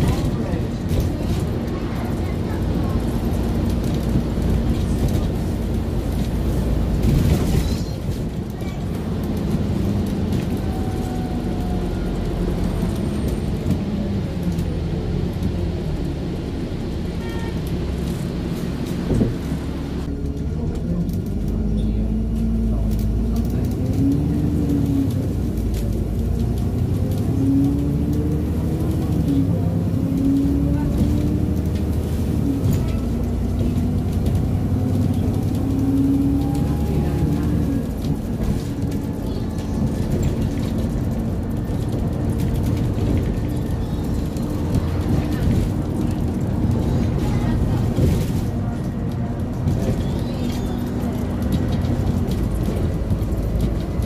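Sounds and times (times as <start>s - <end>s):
bus engine and transmission drone: 0.0s - 54.0s
road and tyre rumble: 0.0s - 54.0s.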